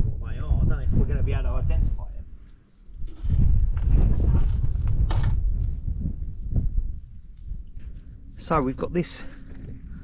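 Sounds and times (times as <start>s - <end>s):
wind buffeting the microphone: 0.0s - 10.0s.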